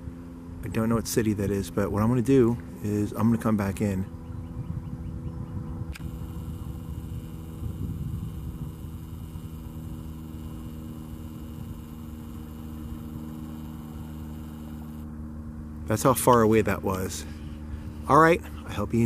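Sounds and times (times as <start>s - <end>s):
low mechanical hum: 0.0s - 19.0s.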